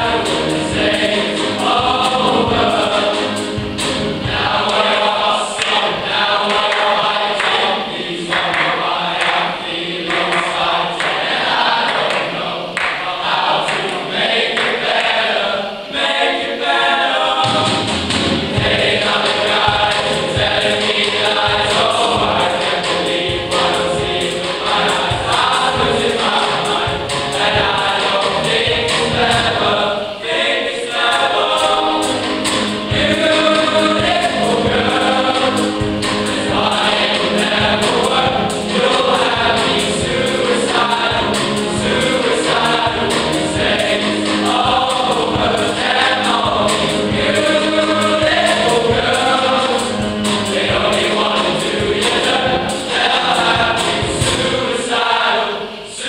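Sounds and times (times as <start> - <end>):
boys' choir singing: 0.0 - 56.0.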